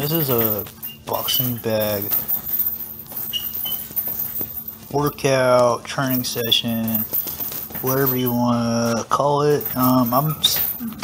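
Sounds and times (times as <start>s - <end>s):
chain jingling: 0.0s - 11.0s
short high squeaks: 3.2s - 4.1s.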